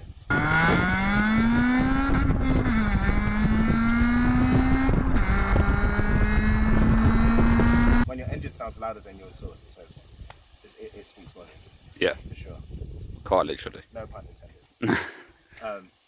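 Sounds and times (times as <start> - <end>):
car engine accelerating hard: 0.3 - 8.0.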